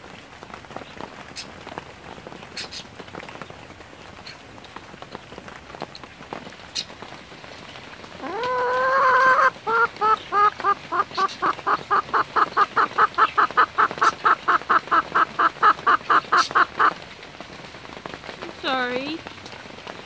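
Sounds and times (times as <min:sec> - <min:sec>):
hen calling: 0:08.2 - 0:17.0
hen clucking: 0:08.2 - 0:17.0.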